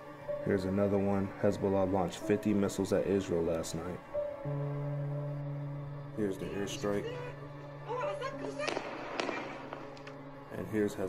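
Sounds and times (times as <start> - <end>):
crackling: 7.0 - 10.7.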